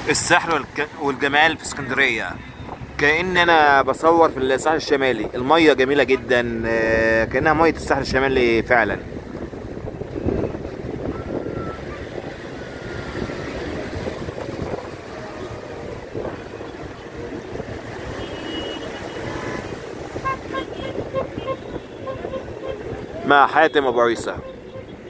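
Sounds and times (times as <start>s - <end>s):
distant road traffic: 0.0s - 25.0s
wind on microphone: 4.7s - 23.5s.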